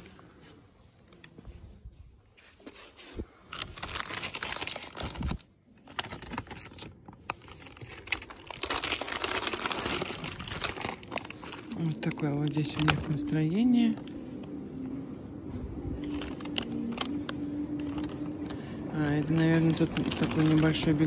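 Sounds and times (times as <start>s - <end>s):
plastic sleeves crinkling: 2.6s - 14.6s, 15.7s - 21.0s.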